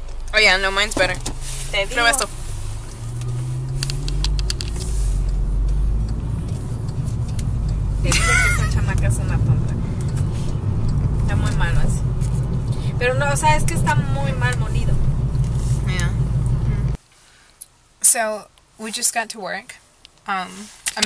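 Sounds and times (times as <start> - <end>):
car cabin road rumble: 0.0 - 17.0
person laughing: 8.1 - 9.0.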